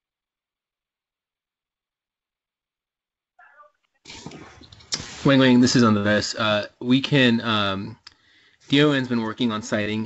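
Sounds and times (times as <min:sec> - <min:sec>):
background hiss: 0:03.4 - 0:10.0
person speaking: 0:03.4 - 0:10.0.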